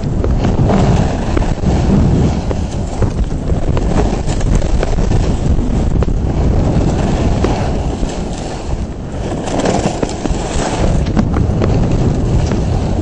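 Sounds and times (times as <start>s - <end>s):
skis scraping on snow: 0.0s - 13.0s
wind rumbling on microphone: 0.0s - 13.0s.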